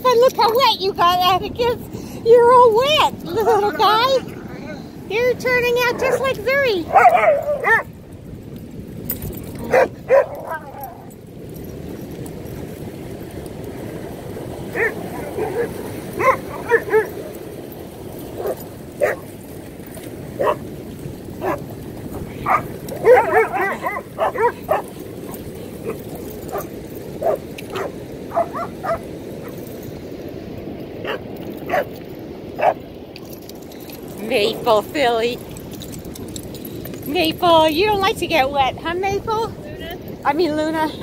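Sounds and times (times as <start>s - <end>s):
ocean surf: 0.0s - 41.0s
dogs barking and yipping: 5.3s - 8.2s, 9.1s - 11.2s, 14.6s - 19.5s, 20.4s - 20.7s, 21.3s - 29.8s, 31.0s - 34.1s.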